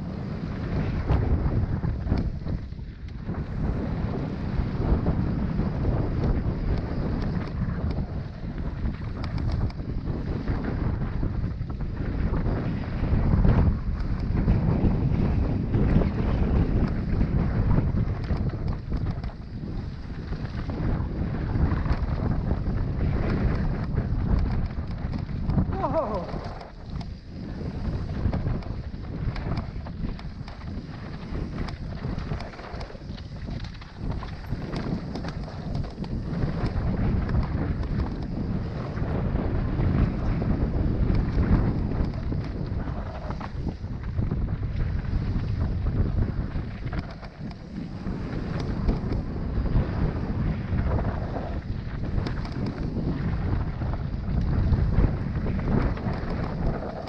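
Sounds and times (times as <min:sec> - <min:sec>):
bike tyres rumbling and rattling: 0:00.0 - 0:57.0
wind buffeting microphone: 0:00.0 - 0:57.0.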